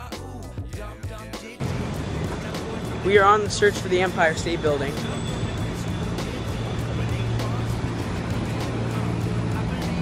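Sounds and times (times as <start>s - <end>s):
background music with steady beat: 0.0s - 10.0s
traffic engine hum: 1.6s - 10.0s.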